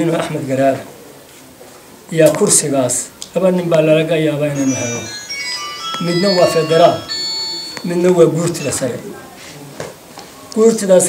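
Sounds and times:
electronic beeping melody: 4.6 - 9.3.

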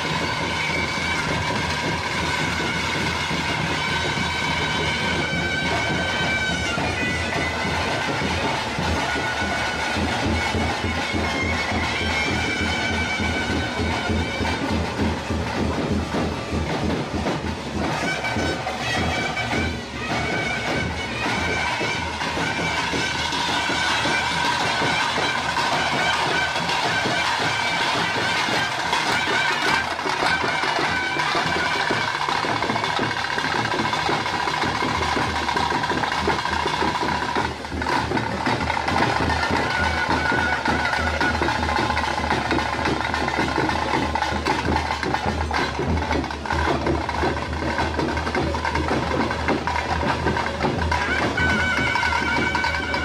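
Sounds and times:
drumming: 0.0 - 53.0.

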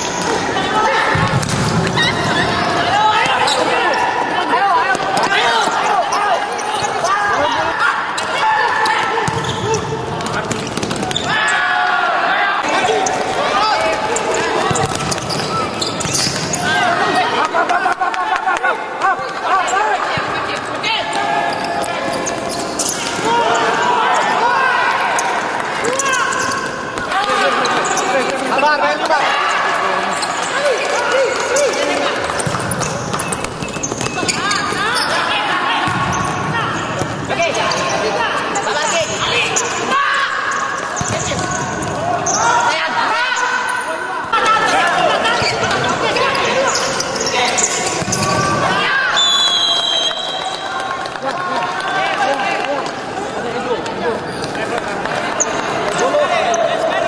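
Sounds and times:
players shouting: 0.0 - 57.0
ball kicked and bouncing: 1.1 - 2.0.

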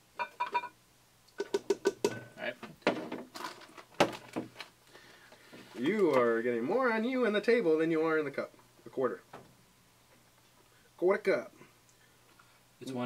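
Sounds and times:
plastic cup knocking on glass bowl: 1.4 - 2.2.

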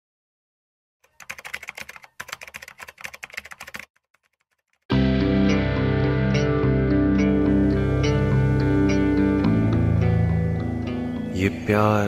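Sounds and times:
keyboard typing clicks: 1.0 - 4.8.

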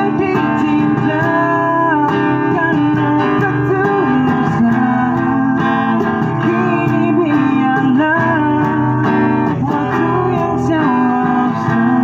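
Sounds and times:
acoustic guitar strumming: 0.0 - 12.0
cajon beat: 0.0 - 12.0
man singing: 0.0 - 12.0.

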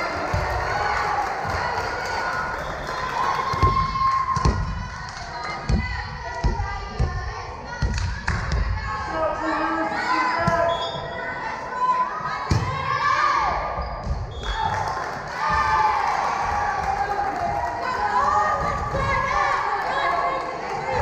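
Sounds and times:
cheering: 0.0 - 5.7, 14.4 - 21.0
girls calling and shouting: 0.0 - 13.8, 14.6 - 21.0
volleyball thumps on wooden floor: 3.5 - 4.8.

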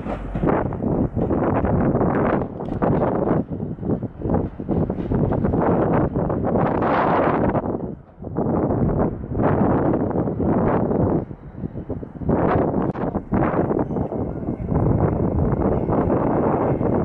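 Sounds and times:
diesel train running slowly: 0.0 - 17.0
wind buffeting microphone: 0.0 - 17.0.

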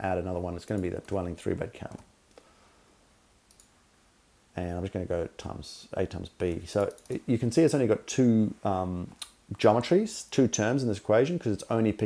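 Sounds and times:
computer mouse clicks: 3.5 - 3.7, 6.8 - 7.2.

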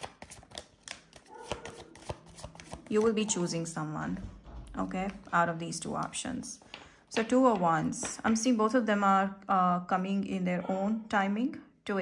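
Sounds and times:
cards clicking and tapping: 0.0 - 3.4.

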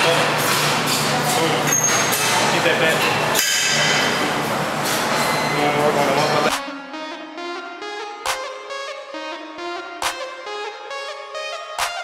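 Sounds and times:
gym background noise: 0.0 - 6.6.

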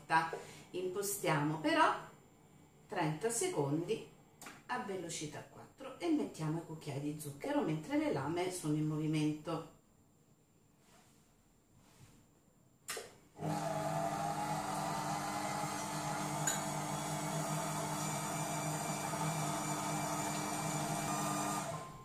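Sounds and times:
food processor motor humming: 13.4 - 22.0.

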